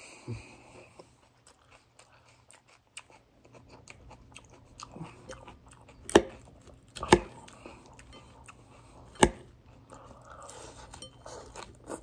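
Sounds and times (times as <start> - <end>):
person chewing crunchy salad: 0.7 - 12.0.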